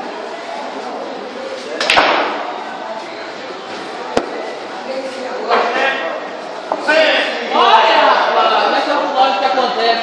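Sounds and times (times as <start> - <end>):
billiard balls colliding: 1.8 - 2.6
cue striking ball: 1.8 - 2.6.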